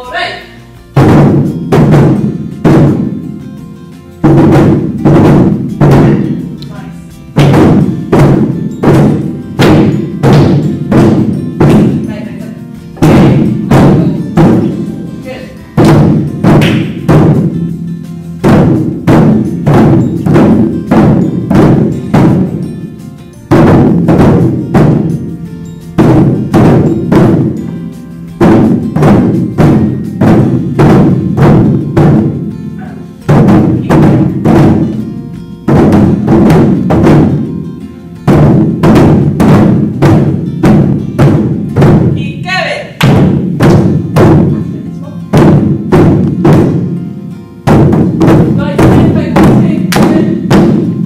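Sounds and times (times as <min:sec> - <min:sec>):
large barrel drums struck in unison: 0:01.0 - 0:03.2, 0:04.2 - 0:06.6, 0:07.3 - 0:12.1, 0:13.0 - 0:17.7, 0:18.4 - 0:22.7, 0:23.5 - 0:25.3, 0:26.0 - 0:27.6, 0:28.4 - 0:32.5, 0:33.2 - 0:35.0, 0:35.6 - 0:37.5, 0:38.2 - 0:47.0, 0:47.6 - 0:51.0.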